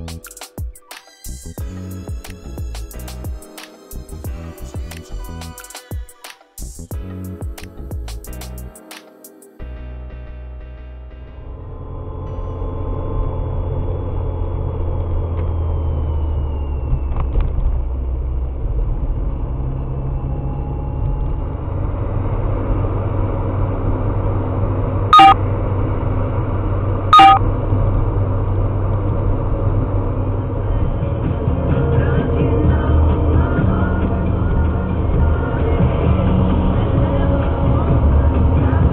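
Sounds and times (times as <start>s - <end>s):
car road rumble from inside: 11.4s - 38.9s
car horn blasts: 25.2s - 25.4s, 27.2s - 27.4s.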